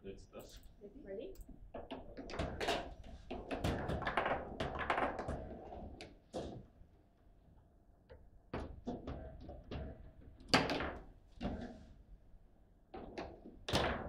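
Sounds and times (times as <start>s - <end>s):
foosball ball clacking: 1.9s - 6.1s.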